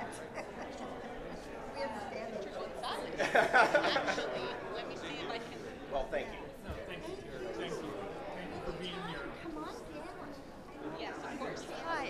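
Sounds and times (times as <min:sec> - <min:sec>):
many people chattering: 0:00.0 - 0:12.0.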